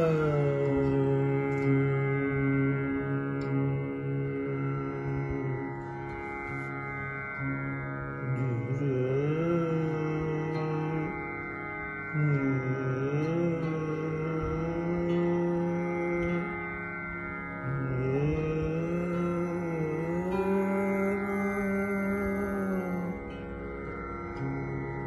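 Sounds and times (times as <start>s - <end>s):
man singing long gliding notes: 0.0s - 25.0s
steady drone: 0.0s - 25.0s
strummed zither glissandi: 0.0s - 25.0s.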